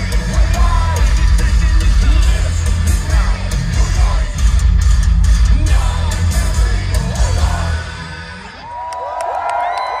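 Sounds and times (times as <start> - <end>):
live band music: 0.0 - 8.5
crowd cheering and whooping: 7.2 - 10.0.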